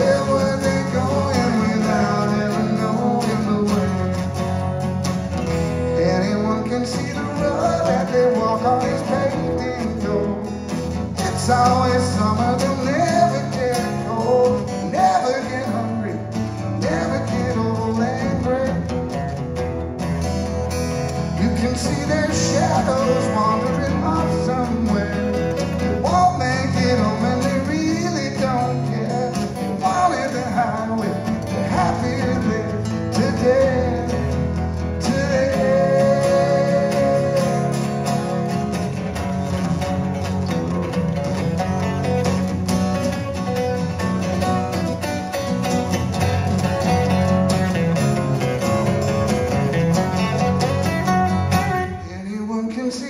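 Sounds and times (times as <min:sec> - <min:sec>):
person singing: 0:00.0 - 0:04.2, 0:26.0 - 0:38.4
acoustic guitars strummed and picked: 0:00.0 - 0:53.0.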